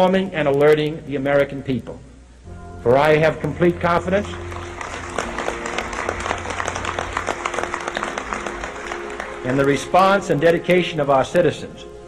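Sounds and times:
soft music bed with low drone: 0.0 - 12.0
audience applause: 4.3 - 10.2.

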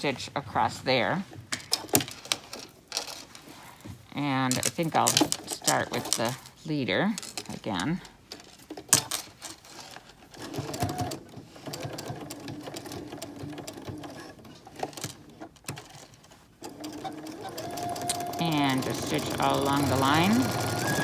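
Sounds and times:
sewing machine stitching: 4.3 - 6.6, 7.2 - 21.0.

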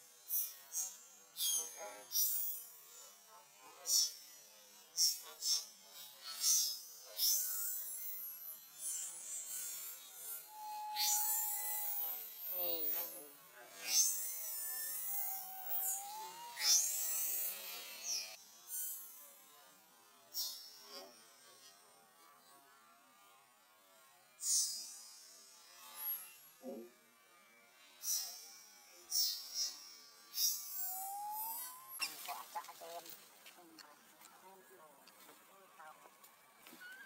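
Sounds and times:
steady high-pitched buzz: 0.0 - 37.0
monkey call: 10.5 - 13.2, 13.8 - 18.0, 30.3 - 33.1, 36.7 - 37.0.

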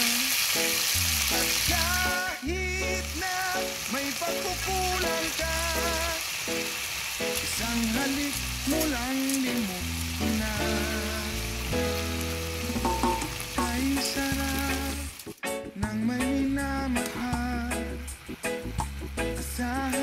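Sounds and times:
meat sizzling in hot oil: 0.0 - 15.5, 16.6 - 20.0
background song with bass line: 1.0 - 6.2, 7.4 - 20.0.

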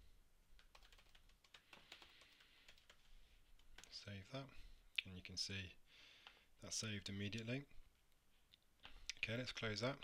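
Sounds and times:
typing on a computer keyboard: 0.6 - 3.9.

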